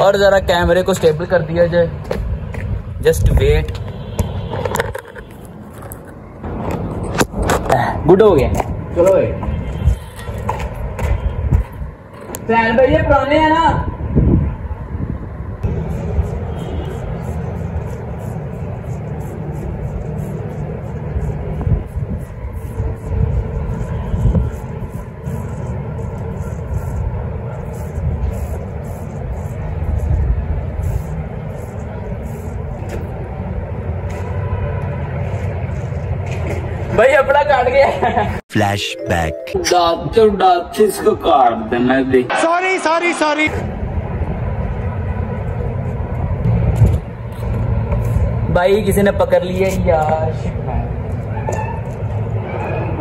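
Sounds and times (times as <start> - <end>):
wind buffeting microphone: 8.4 - 33.8.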